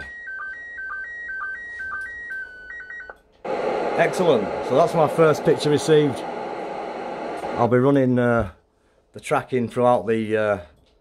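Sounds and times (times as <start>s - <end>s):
radio tone stepping between pitches: 3.5s - 7.8s.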